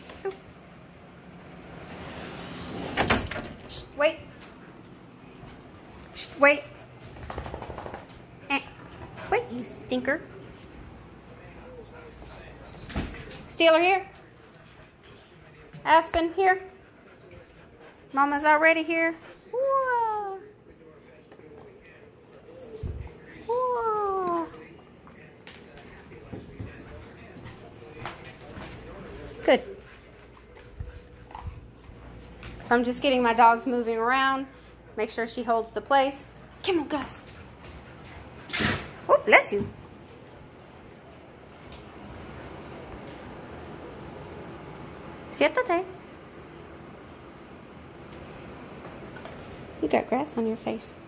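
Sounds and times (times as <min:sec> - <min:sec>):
woman speaking: 0:03.7 - 0:04.4, 0:06.0 - 0:06.8, 0:08.4 - 0:10.4, 0:13.5 - 0:14.2, 0:15.8 - 0:16.8, 0:18.1 - 0:20.5, 0:29.4 - 0:29.8, 0:32.6 - 0:37.3, 0:39.1 - 0:39.8, 0:45.3 - 0:46.0, 0:49.8 - 0:51.0.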